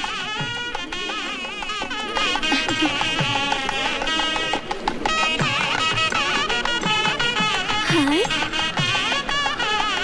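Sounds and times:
drums: 0.0 - 10.0
reedy wind instrument melody: 0.0 - 10.0.

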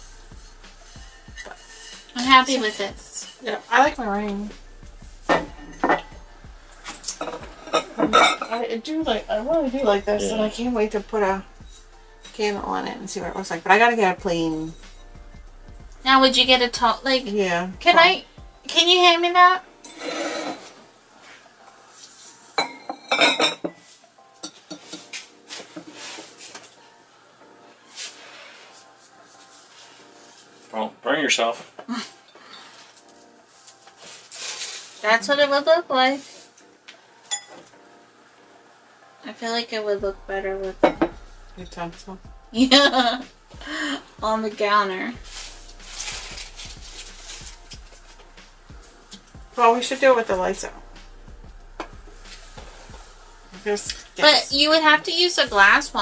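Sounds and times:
stoneware clinking and knocking: 5.3 - 6.1, 6.9 - 8.7, 22.6 - 23.8, 37.3 - 37.7, 40.8 - 41.1.

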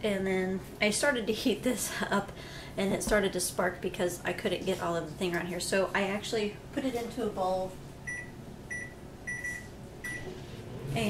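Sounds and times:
microwave keypad beeps: 8.0 - 10.3.

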